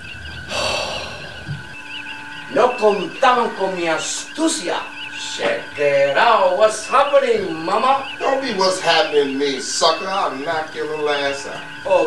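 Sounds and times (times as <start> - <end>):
electronic hum: 0.0 - 12.0
warbling beeps: 0.0 - 12.0
breathy hiss: 0.5 - 1.6.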